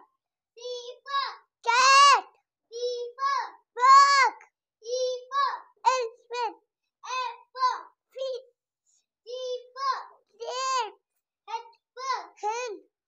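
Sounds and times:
child chanting in sing-song voice: 0.6 - 8.4, 9.3 - 11.0.

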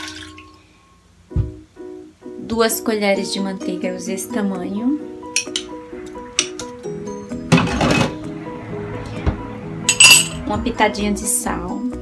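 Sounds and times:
plucked-string background music: 1.2 - 12.0
metal spoon clinking on glass: 5.4 - 5.7, 9.9 - 10.4.

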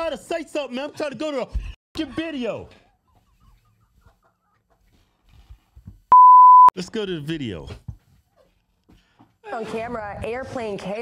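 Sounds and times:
stifled squeaky giggles: 2.8 - 5.0.

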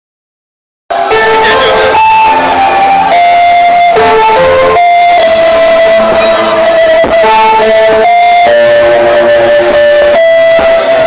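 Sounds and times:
electric guitar: 0.9 - 11.0
live band playing loudly: 0.9 - 11.0.

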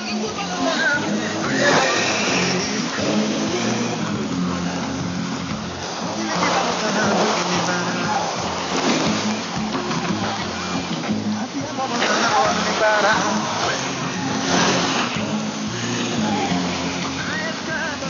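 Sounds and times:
music over radio: 0.0 - 18.0
static hiss: 0.0 - 18.0.

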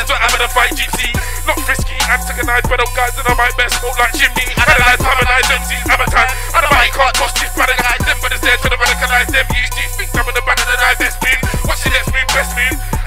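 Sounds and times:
deep bass line: 0.0 - 13.0
fast hi-hat pattern: 0.0 - 13.0
hip-hop beat: 0.0 - 13.0
man rapping into microphone: 0.0 - 13.0.

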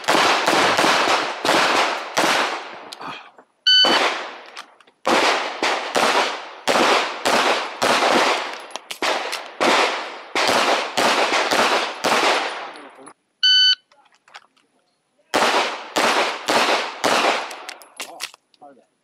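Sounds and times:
pistol firing with echo: 0.0 - 2.9, 3.8 - 4.4, 5.0 - 12.9, 15.3 - 17.8
shot timer beep: 3.7 - 4.0, 13.4 - 13.9.

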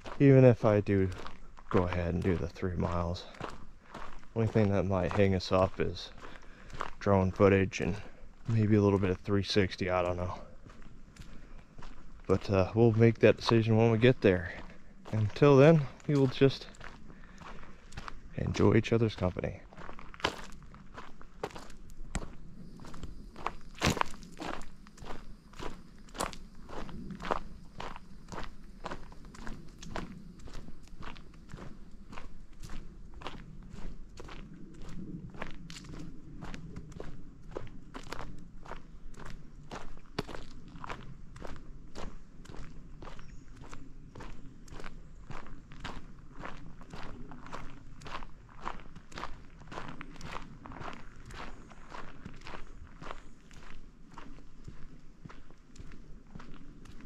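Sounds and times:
footsteps on dirt trail: 0.0 - 57.0.

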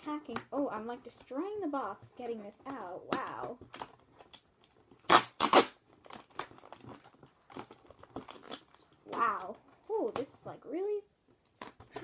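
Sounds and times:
cardboard tearing: 3.7 - 9.4
cardboard crinkling and rustling: 5.8 - 10.5, 11.3 - 12.0.

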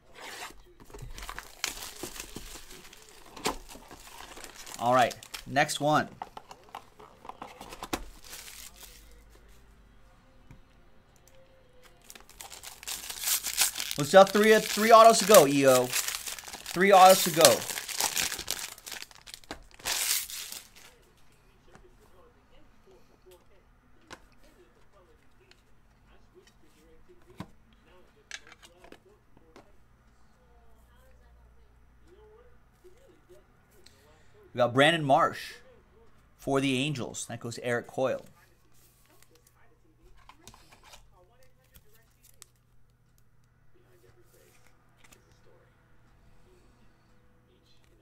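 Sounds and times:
packaging crinkling and rustling: 0.8 - 9.2, 12.0 - 21.0
foil pack torn open: 12.1 - 20.9.

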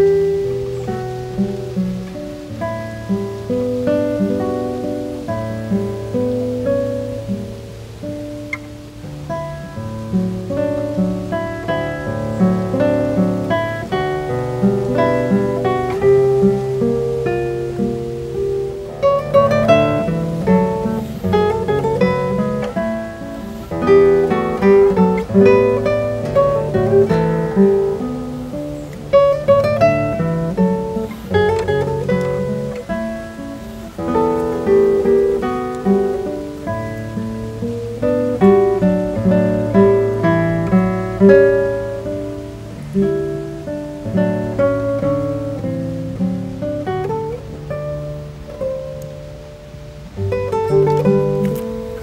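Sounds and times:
fingerstyle nylon string guitar: 0.0 - 52.0.

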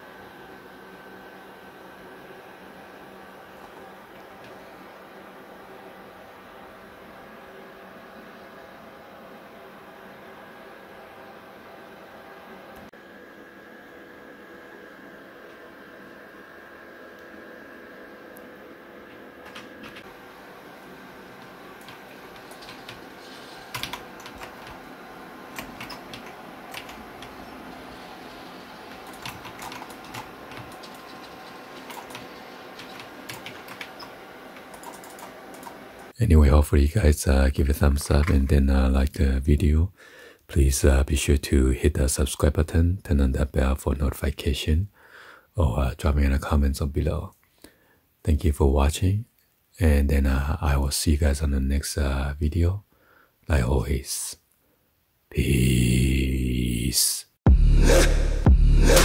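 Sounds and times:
computer cooling fans whirring: 0.0 - 44.8.

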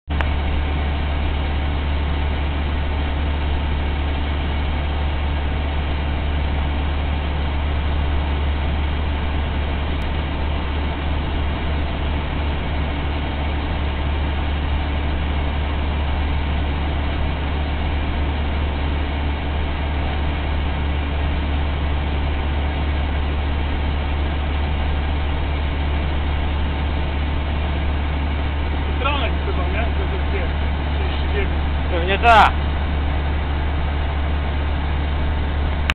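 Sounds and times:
road noise: 0.1 - 35.9
truck engine drone: 0.1 - 35.9.

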